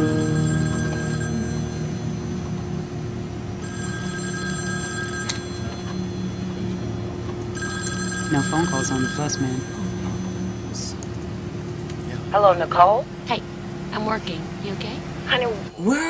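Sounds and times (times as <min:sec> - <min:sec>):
mobile phone ringtone: 0:00.0 - 0:10.9
low steady hum: 0:00.0 - 0:16.0.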